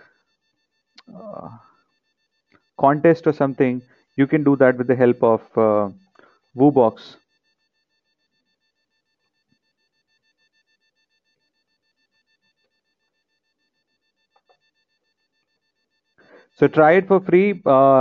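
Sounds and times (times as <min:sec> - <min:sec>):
thin high whine: 0:00.0 - 0:18.0.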